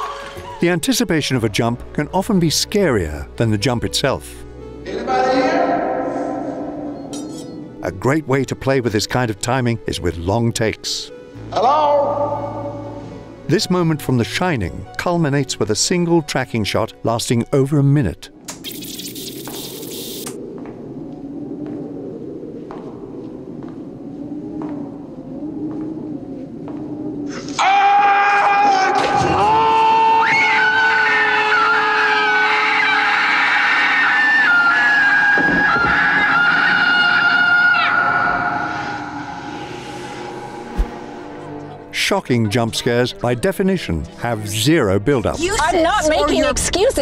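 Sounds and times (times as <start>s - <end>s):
tense low drone: 5.7s - 8.6s, 19.6s - 27.6s, 36.5s - 42.0s
screaming: 27.3s - 40.4s
shrill dissonant sting: 35.5s - 41.9s.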